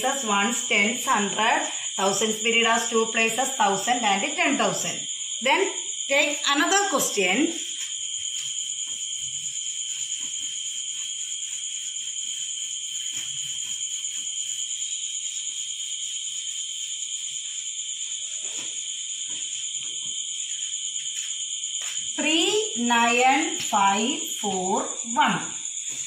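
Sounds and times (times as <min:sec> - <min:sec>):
insect trill: 0:00.0 - 0:26.0
duster wiping a chalkboard: 0:06.1 - 0:23.8, 0:25.8 - 0:26.0.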